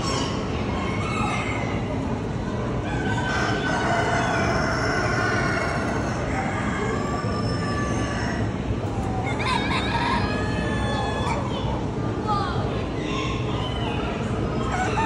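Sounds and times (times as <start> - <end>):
roosters crowing: 2.8 - 11.4, 14.6 - 15.0.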